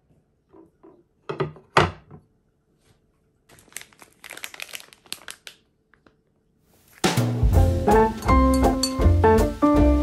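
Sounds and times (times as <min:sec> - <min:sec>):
plastic bag crinkling: 0:03.5 - 0:07.1.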